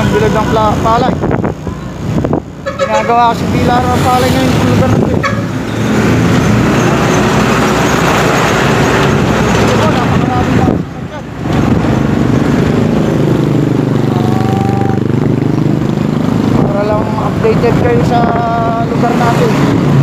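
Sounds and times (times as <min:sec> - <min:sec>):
wind on microphone: 0:00.8 - 0:02.8, 0:03.4 - 0:20.0
motorcycle engine running: 0:11.7 - 0:19.5.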